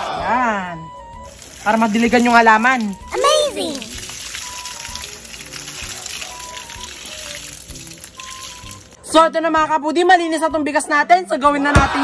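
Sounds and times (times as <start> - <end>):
light background music: 0.0 - 12.0
water splashing onto soil: 1.2 - 9.0.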